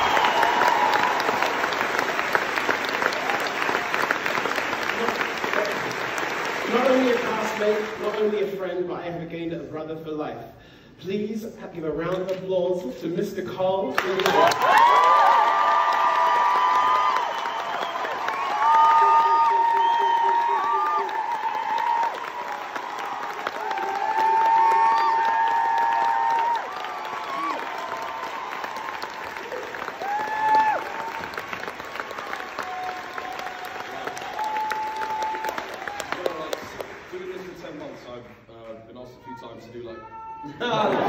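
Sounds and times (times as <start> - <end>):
high whoops and cheers: 0.0 - 1.8, 14.2 - 36.6, 39.2 - 41.0
audience applauding: 0.0 - 8.6, 13.9 - 38.4.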